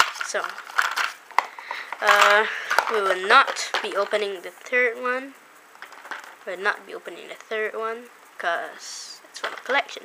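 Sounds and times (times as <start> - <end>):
plastic packaging crinkling: 0.0 - 4.2, 5.8 - 6.5.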